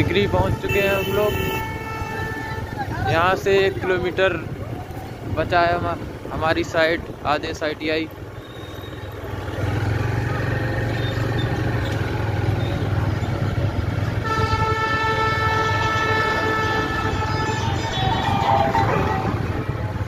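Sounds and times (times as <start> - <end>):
motorcycle engine: 0.0 - 20.0
road noise: 0.0 - 20.0
vehicle horn long note: 0.2 - 2.9, 14.2 - 19.4.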